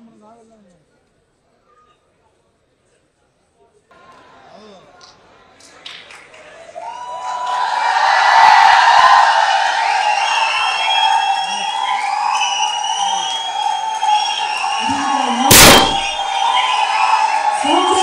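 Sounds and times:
crowd cheering and shouting: 0:06.8 - 0:18.0
loud burst of noise: 0:15.5 - 0:16.4.

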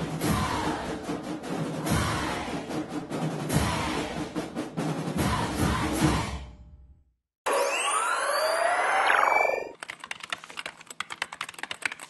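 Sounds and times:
falling tone: 0:07.5 - 0:09.8
rapid keyboard typing clicks: 0:09.7 - 0:12.0.

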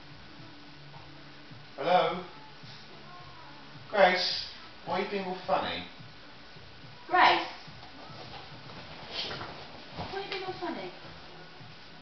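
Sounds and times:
low steady room background: 0:00.0 - 0:12.0.

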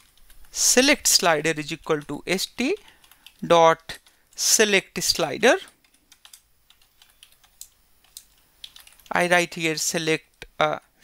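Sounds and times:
computer keyboard typing: 0:00.0 - 0:00.6, 0:01.8 - 0:04.4, 0:05.6 - 0:09.2.

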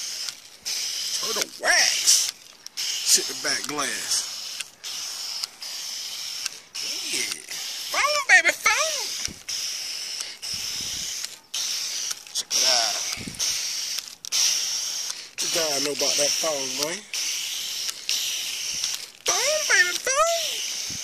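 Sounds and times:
foam gun spraying hiss: 0:00.0 - 0:21.0
man exclaiming: 0:06.9 - 0:09.1, 0:19.3 - 0:20.6.

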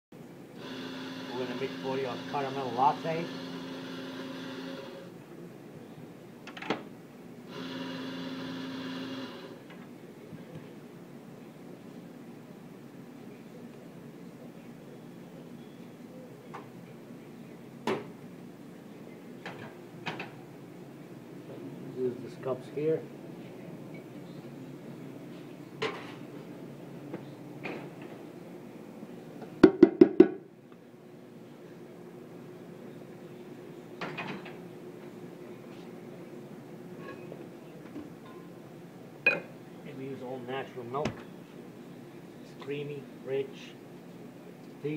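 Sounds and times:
faint background hum: 0:00.2 - 0:44.9
coffee grinder motor: 0:00.6 - 0:05.1, 0:07.5 - 0:09.6.

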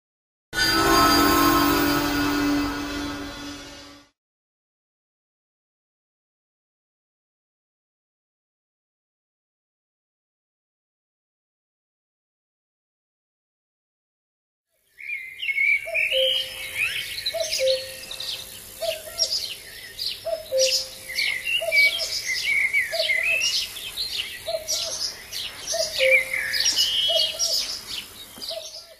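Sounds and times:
low repeating bird note: 0:00.6 - 0:04.1, 0:25.7 - 0:27.6
birds chirping and warbling: 0:14.8 - 0:28.9.

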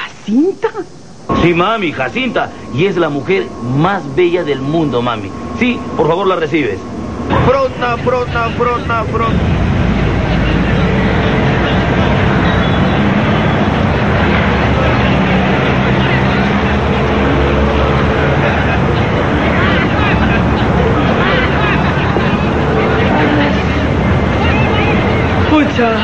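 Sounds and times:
murmur of voices: 0:00.0 - 0:26.0
aircraft engine drone: 0:00.9 - 0:26.0.

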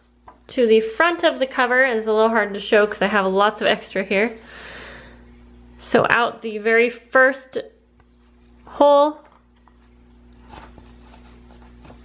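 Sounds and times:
steady low hum: 0:00.0 - 0:12.0
paper rustling: 0:09.3 - 0:12.0.

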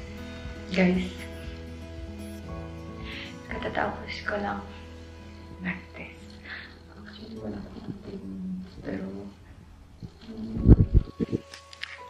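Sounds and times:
woman's voice: 0:00.7 - 0:01.2, 0:03.5 - 0:04.8, 0:05.6 - 0:06.3.

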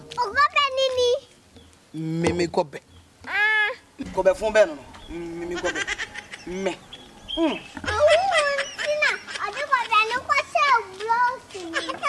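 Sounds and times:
child's high-pitched voice: 0:00.1 - 0:01.3, 0:07.8 - 0:12.0.

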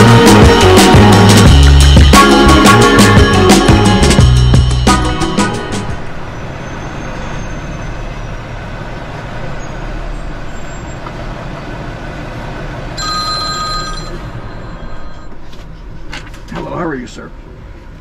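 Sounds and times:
truck diesel engine running: 0:00.0 - 0:18.0
electronic ringing tone: 0:13.0 - 0:15.5.

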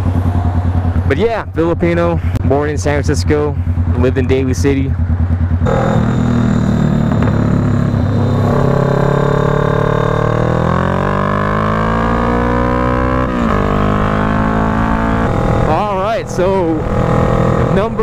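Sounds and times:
motorcycle engine revving: 0:00.0 - 0:18.0.

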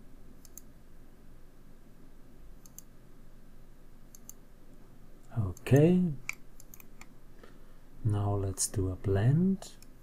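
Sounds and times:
faint low room hum: 0:00.0 - 0:10.0
computer mouse clicks: 0:00.4 - 0:00.7, 0:02.6 - 0:02.9, 0:04.1 - 0:04.4, 0:05.2 - 0:07.1.

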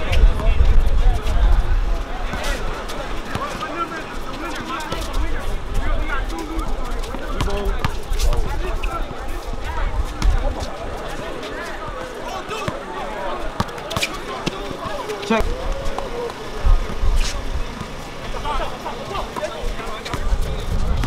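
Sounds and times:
people talking and calling out: 0:00.0 - 0:21.0
basketball bouncing on court: 0:03.3 - 0:03.6.

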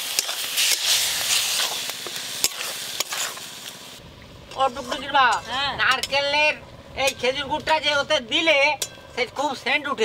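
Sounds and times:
metal spatula scraping wok: 0:00.0 - 0:03.6
food sizzling: 0:00.0 - 0:04.0.

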